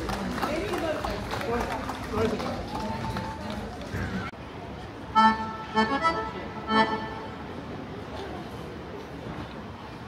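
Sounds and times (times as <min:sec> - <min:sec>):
crowd chatter: 0:00.0 - 0:10.0
accordion: 0:05.1 - 0:07.6.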